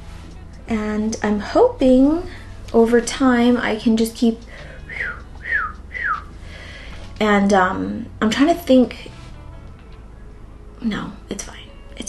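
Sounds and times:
whistled notes falling in pitch: 0:04.8 - 0:06.3.

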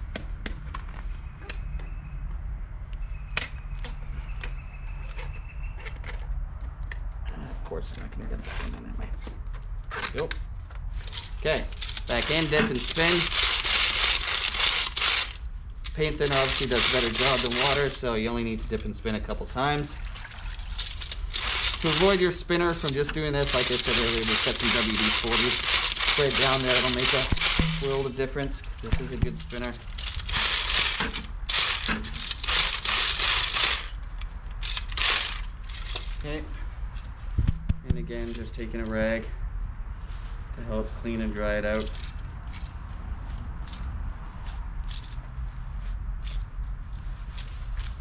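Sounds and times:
brush spinner whirring rattle: 0:11.9 - 0:18.0, 0:20.3 - 0:36.1.

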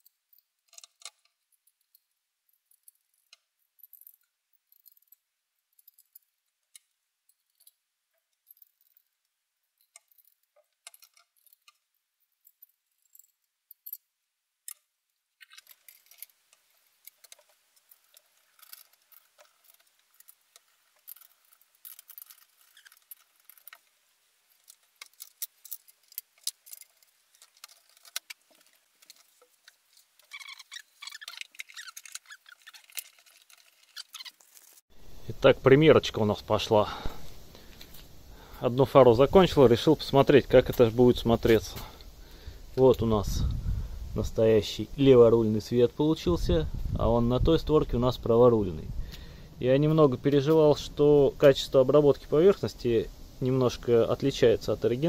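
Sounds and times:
plastic and metal parts clicking: 0:00.0 - 0:09.2, 0:09.8 - 0:14.0, 0:14.6 - 0:34.8.

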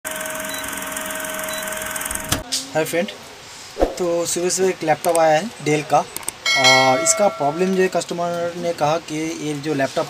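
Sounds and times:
film projector whirring rattle: 0:00.1 - 0:02.4
faint constant hum: 0:01.4 - 0:10.0.

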